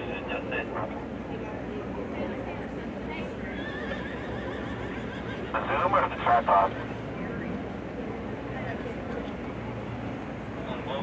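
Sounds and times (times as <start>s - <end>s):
outdoor arena noise: 0.0s - 11.0s
horse whinnying: 3.6s - 5.5s.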